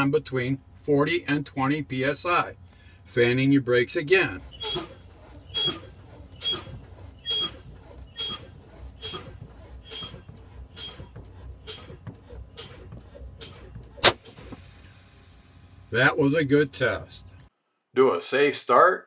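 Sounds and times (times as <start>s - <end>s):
air brake puffs: 2.6s - 3.1s, 4.3s - 16.0s
hiss of escaping air: 13.4s - 16.1s
sharp crack: 14.0s - 14.6s.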